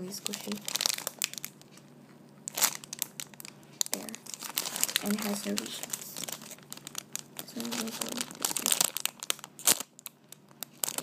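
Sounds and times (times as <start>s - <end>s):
plastic bag crinkling: 0.0s - 1.8s, 2.4s - 11.0s.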